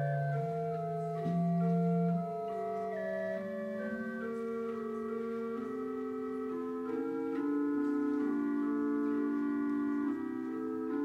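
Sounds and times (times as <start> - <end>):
organ playing sustained chords: 0.0 - 11.0.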